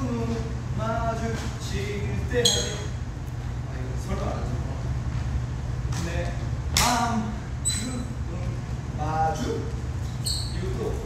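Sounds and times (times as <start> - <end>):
man speaking: 0.0 - 3.0, 6.0 - 9.8, 10.4 - 11.0
steady low hum: 0.0 - 11.0
high-pitched squeak: 10.2 - 10.9.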